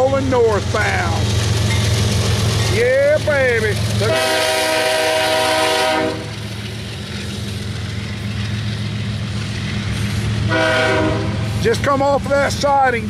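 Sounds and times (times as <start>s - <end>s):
freight train rumbling: 0.0s - 13.0s
locomotive horn blast: 4.0s - 6.4s, 10.5s - 11.6s.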